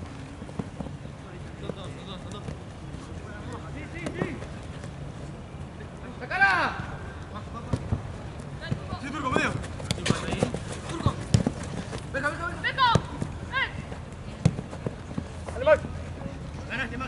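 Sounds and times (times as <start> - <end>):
ball kicks: 8.7 - 12.0.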